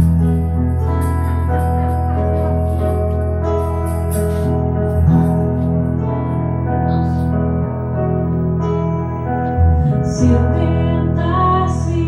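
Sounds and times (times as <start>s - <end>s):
electric guitar chords: 0.0s - 12.0s
keyboard chords: 0.0s - 12.0s.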